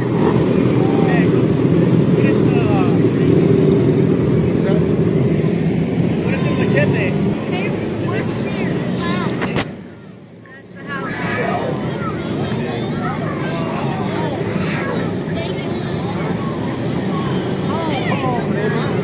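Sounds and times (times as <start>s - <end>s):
motorcycle engines passing: 0.0s - 19.0s.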